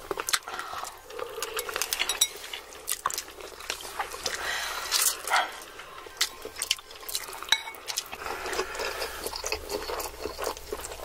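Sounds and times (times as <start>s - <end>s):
noodle slurping: 8.0s - 11.0s.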